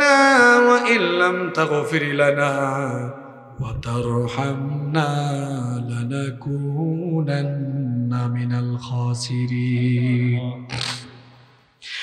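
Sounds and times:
man chanting melodically: 0.0 - 11.1.

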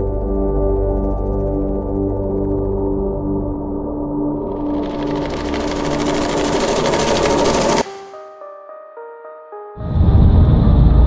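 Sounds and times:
pulsing mechanical buzz: 4.3 - 7.8.

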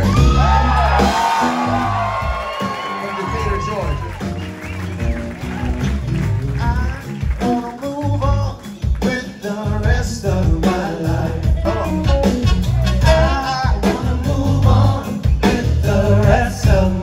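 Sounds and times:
live band playing: 0.0 - 17.0
voices singing: 12.8 - 17.0.

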